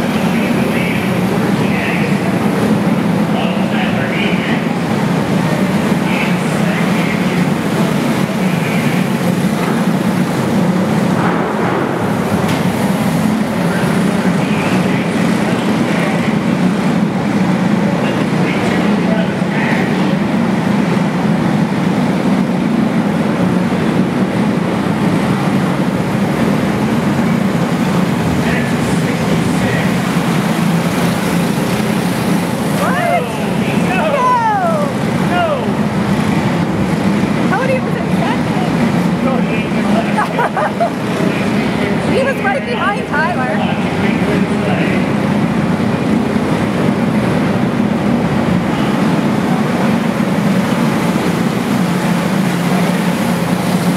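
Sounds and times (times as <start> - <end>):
racing kart engines droning: 0.0 - 53.9
voices: 0.0 - 53.9.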